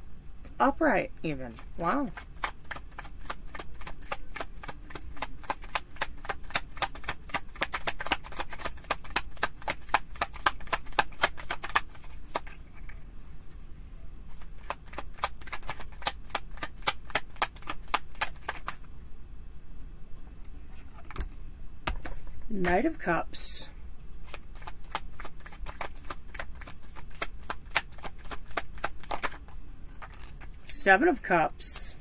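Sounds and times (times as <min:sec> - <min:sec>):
cards being shuffled: 0:01.5 - 0:13.6, 0:14.3 - 0:18.8, 0:20.7 - 0:22.7, 0:24.2 - 0:30.6.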